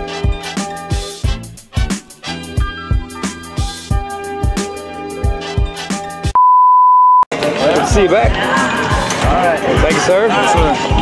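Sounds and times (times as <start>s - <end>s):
high-pitched test-tone beep: 6.4s - 7.3s.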